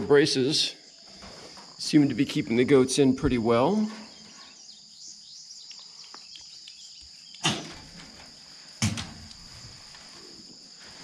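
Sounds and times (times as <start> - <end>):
high insect trill: 0.0 - 11.0.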